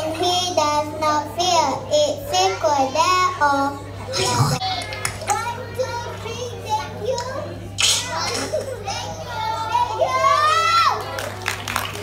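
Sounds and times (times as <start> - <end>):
children talking and calling out: 0.0 - 11.3.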